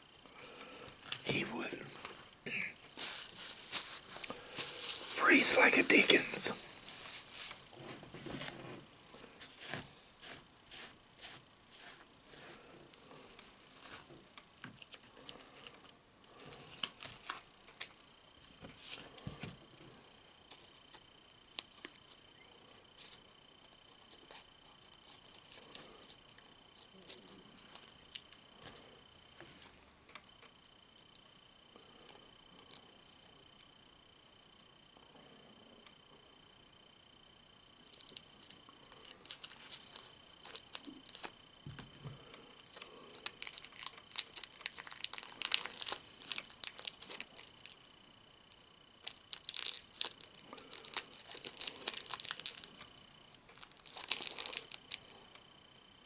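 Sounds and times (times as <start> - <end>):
wrapper crinkling and rustling: 2.8 - 7.7, 37.9 - 41.4, 42.6 - 47.8, 49.0 - 55.0
faint steady high tone: 19.2 - 56.0.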